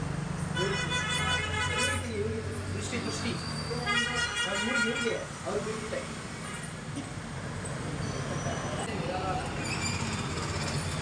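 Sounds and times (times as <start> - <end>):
vehicle horn honking: 0.6 - 2.1, 3.8 - 5.2.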